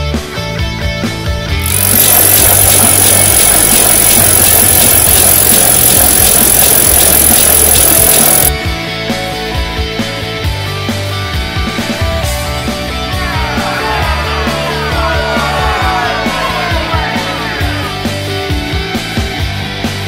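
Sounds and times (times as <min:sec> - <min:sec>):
loud dense wall of noise: 0:01.6 - 0:08.5.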